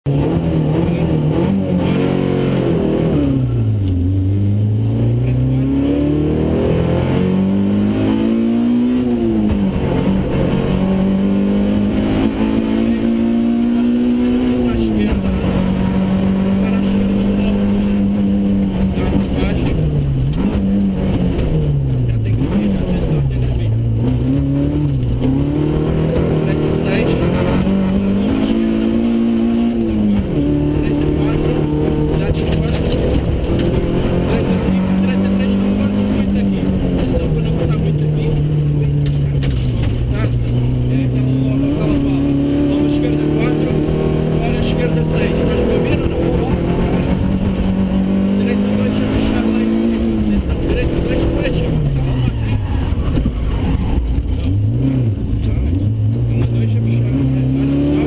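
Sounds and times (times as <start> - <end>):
rally car engine revving: 0.0 - 58.0.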